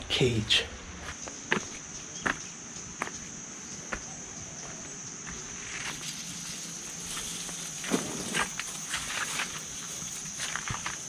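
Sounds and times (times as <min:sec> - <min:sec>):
footsteps scuffing: 0:01.0 - 0:11.0
high-pitched insect drone: 0:01.0 - 0:11.0.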